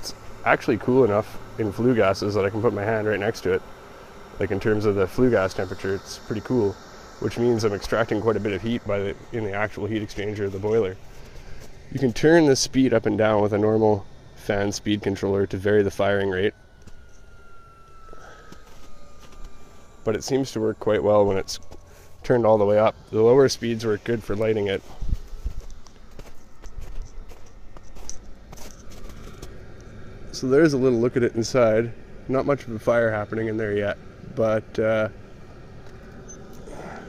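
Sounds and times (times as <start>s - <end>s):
blower whirring: 0.0s - 37.0s
electric fan motor whine: 0.0s - 37.0s.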